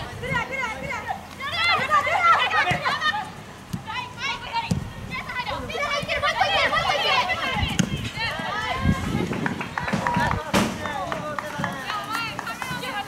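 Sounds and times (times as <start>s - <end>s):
women shouting and calling: 0.0s - 10.4s, 11.7s - 13.0s
dull low thuds: 7.6s - 11.3s.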